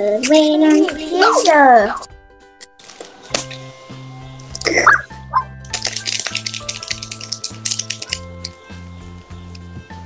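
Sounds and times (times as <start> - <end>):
rapid rattling crackling noise: 0.0 - 9.7
background music with bass line: 0.0 - 10.0.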